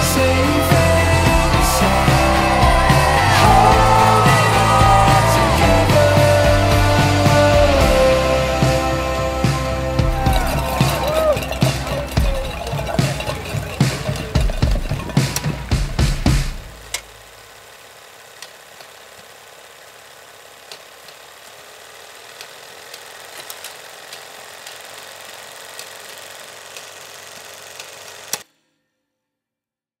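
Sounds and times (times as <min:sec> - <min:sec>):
closing music: 0:00.0 - 0:16.9
soft film crackle clicks: 0:20.6 - 0:28.4.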